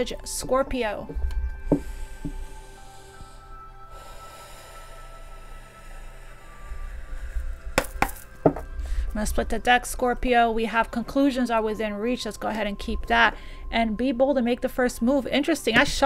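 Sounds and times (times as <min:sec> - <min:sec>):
soft background music: 0:00.0 - 0:16.0.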